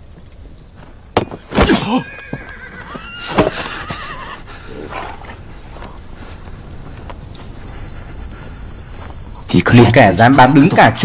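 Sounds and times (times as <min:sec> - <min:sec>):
horse whinnying: 0:01.6 - 0:05.3.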